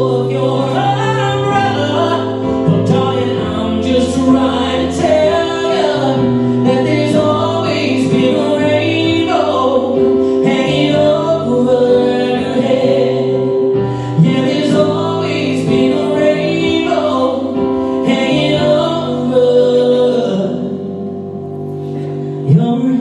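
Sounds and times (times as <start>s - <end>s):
man singing live: 0.0s - 21.0s, 22.4s - 23.0s
held backing chords: 0.0s - 23.0s.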